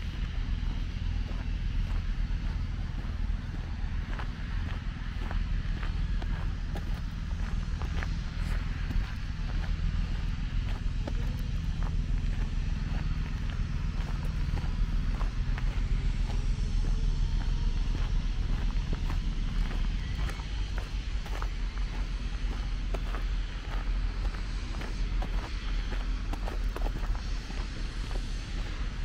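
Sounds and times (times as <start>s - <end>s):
footsteps crunching on gravel: 0.0s - 29.0s
low background rumble: 0.0s - 29.0s.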